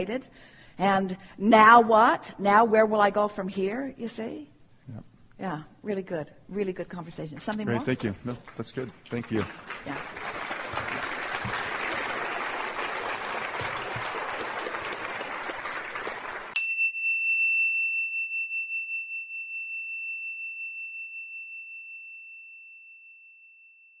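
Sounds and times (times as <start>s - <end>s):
audience applause: 7.8s - 16.6s
small bell ringing: 16.6s - 24.0s.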